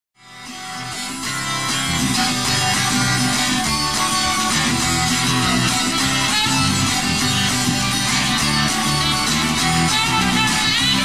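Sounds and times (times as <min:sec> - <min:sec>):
guitar strumming: 0:00.2 - 0:11.0.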